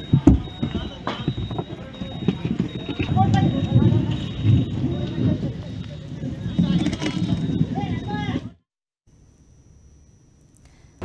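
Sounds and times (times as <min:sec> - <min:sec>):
fire knocks and crackles: 0:00.0 - 0:05.4
people's voices: 0:00.0 - 0:08.6
faint high whine: 0:09.1 - 0:11.0.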